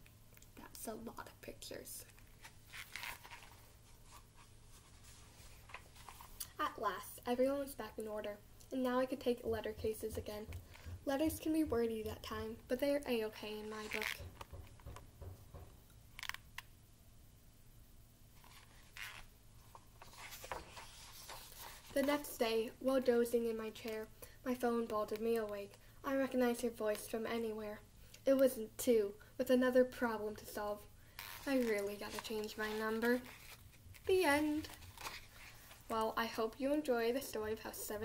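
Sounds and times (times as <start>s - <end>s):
low steady hum: 0.0s - 38.0s
paper pages rustling: 2.0s - 6.4s, 18.4s - 22.4s, 31.3s - 35.9s
soft knock: 14.2s - 15.8s.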